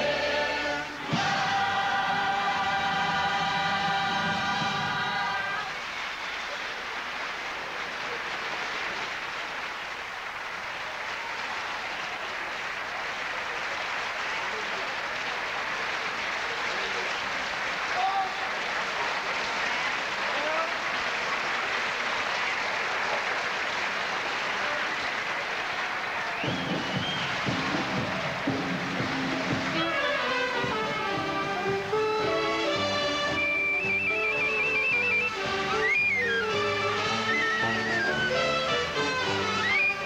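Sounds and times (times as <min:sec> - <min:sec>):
music: 0:00.0 - 0:05.8, 0:26.4 - 0:40.0
audience applauding: 0:00.0 - 0:40.0
calls or whistles: 0:26.2 - 0:27.9, 0:33.0 - 0:40.0.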